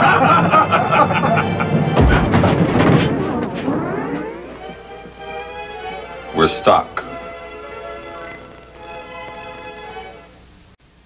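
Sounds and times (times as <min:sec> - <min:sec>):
men laughing: 0:00.0 - 0:01.8
elevator jolting to a halt: 0:00.0 - 0:05.1
held rising note: 0:01.4 - 0:06.2.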